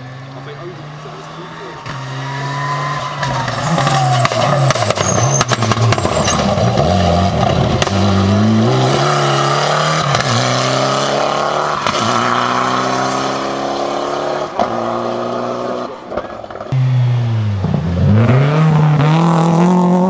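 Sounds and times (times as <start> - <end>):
rally car engine revving past: 0.0 - 20.0.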